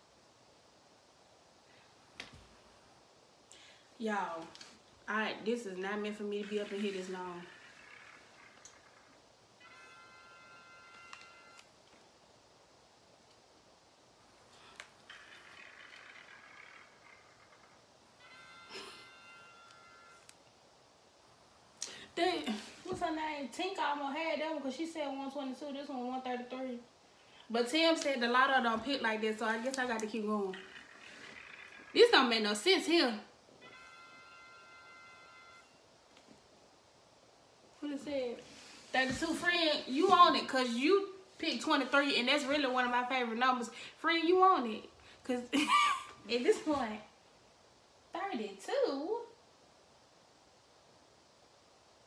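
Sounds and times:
faint steady high tone: 0:04.3 - 0:12.0, 0:14.5 - 0:20.6, 0:29.7 - 0:36.4.

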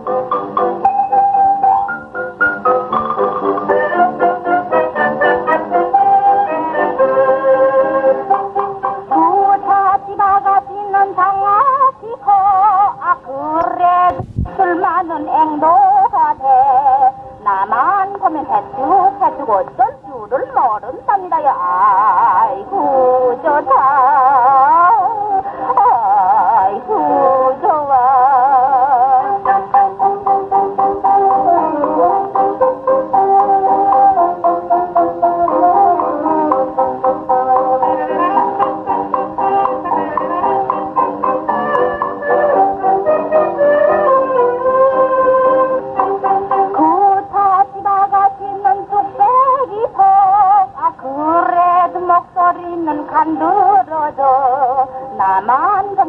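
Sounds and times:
small band playing: 0:00.0 - 0:09.5, 0:29.2 - 0:47.4
woman singing with vibrato: 0:09.0 - 0:56.0.

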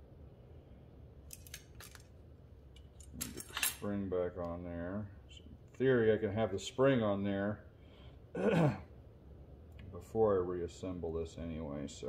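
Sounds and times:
small metal parts clicking: 0:01.2 - 0:02.1, 0:02.7 - 0:03.8.

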